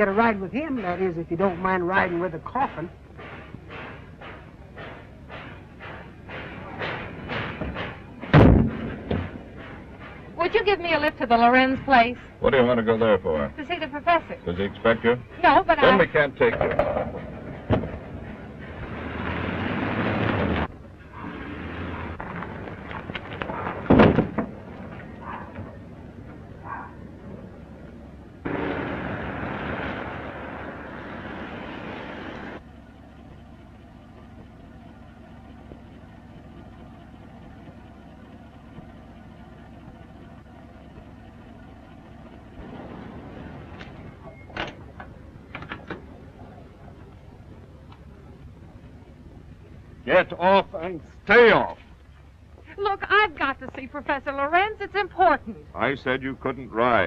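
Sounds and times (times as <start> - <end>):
quiet steady hum: 0.0 - 57.0
truck engine driving: 0.0 - 57.0.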